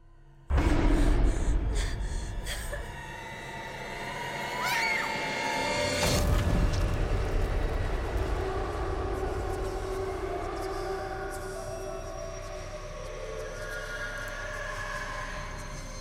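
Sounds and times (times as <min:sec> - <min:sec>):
low rumbling drone: 0:00.0 - 0:04.6
eerie sustained tones: 0:00.0 - 0:16.0.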